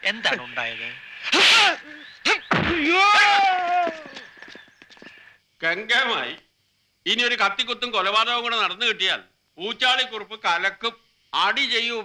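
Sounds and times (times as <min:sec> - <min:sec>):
man's drawn-out cry: 0:02.8 - 0:04.2.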